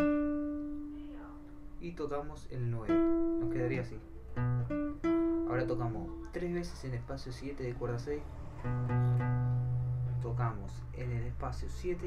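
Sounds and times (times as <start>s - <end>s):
plucked classical guitar note: 0.0s - 1.7s, 2.8s - 6.9s, 8.5s - 10.6s.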